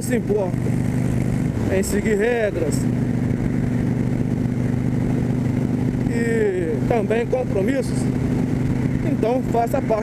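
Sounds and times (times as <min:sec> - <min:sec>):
motorcycle engine running: 0:00.0 - 0:10.0
wind and road noise: 0:00.0 - 0:10.0.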